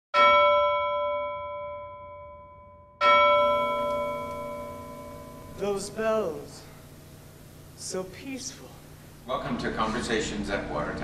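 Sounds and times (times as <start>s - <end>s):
bell ringing: 0.2s - 6.8s.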